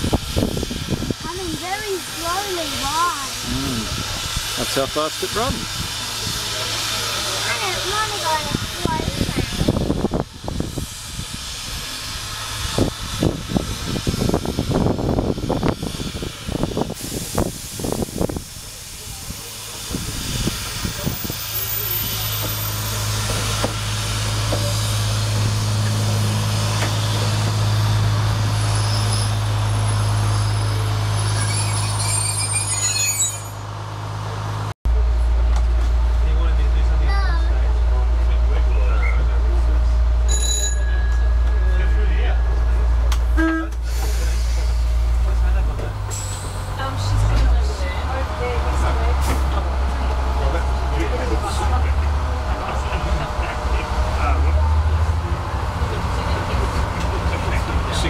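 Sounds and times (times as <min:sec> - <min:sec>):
steam locomotive hiss: 0:00.0 - 0:33.2, 0:42.7 - 0:47.2
railcar engine idling hum: 0:00.0 - 0:58.0.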